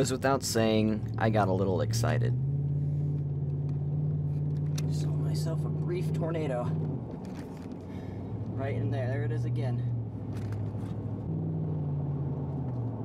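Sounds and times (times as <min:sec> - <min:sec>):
vehicle engine droning: 0:00.0 - 0:13.0.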